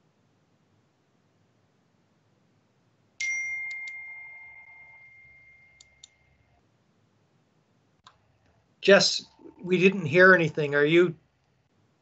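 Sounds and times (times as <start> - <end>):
high bell-like ding: 3.2 - 6.0
faint clicks: 8.0 - 8.6
man speaking: 8.8 - 11.2.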